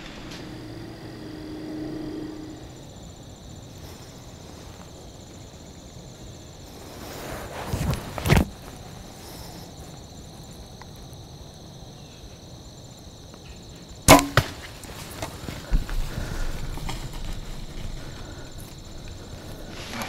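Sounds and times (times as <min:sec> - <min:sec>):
insect drone: 0:00.0 - 0:20.0.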